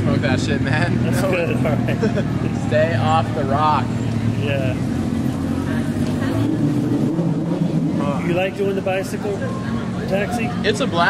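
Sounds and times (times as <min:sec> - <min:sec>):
faint voices: 0:00.0 - 0:11.0
vehicle engine rumbling: 0:00.0 - 0:11.0.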